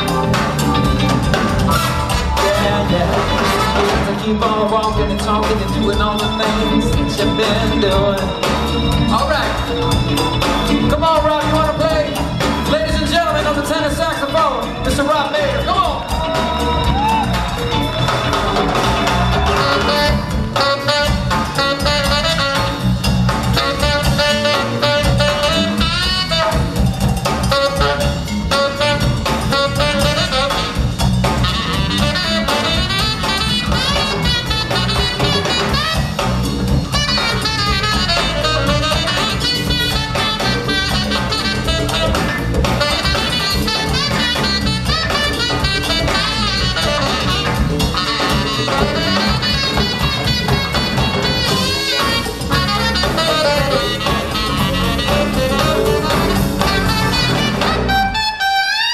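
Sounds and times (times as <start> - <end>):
bass: 0.0 - 58.9
drums: 0.0 - 58.9
tenor saxophone solo: 16.7 - 58.9.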